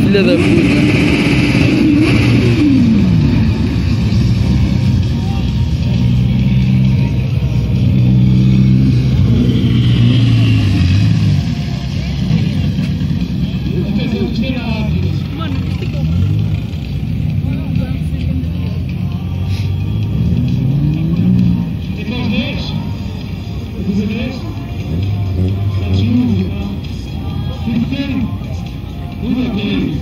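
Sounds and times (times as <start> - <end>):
car engine droning: 0.0 - 30.0
crowd voices: 0.0 - 30.0.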